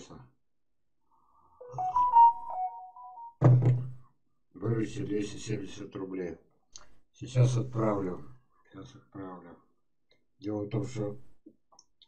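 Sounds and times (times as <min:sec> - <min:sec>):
notification chime beeps: 0:01.6 - 0:03.4
knock: 0:03.4 - 0:04.0.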